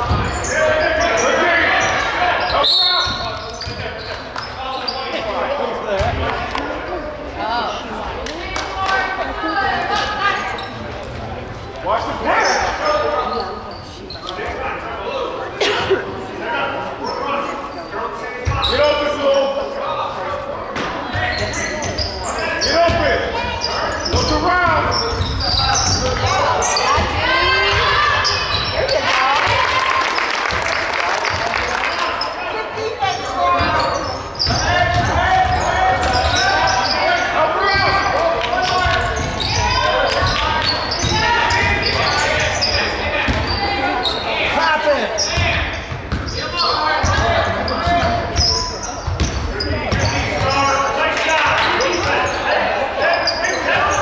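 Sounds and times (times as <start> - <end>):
crowd noise: 0.0 - 54.0.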